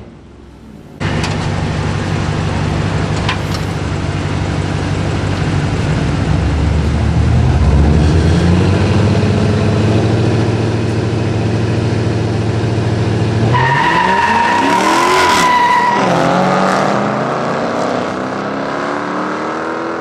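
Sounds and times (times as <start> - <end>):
car engines revving: 0.0 - 20.0.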